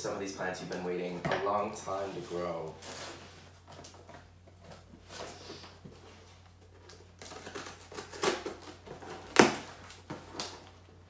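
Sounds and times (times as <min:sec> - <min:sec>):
tape tearing: 0:06.8 - 0:10.7.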